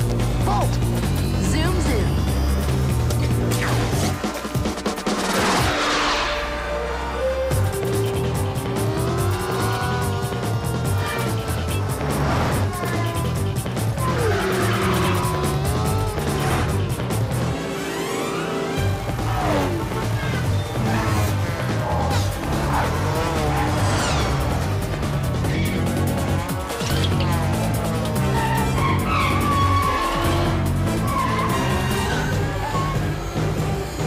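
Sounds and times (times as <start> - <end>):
motorcycle engines at speed: 0.0 - 5.7, 6.7 - 34.0
action film score: 0.0 - 34.0
tyres skidding: 0.0 - 34.0
car tyre squeal: 14.0 - 16.6, 28.2 - 34.0.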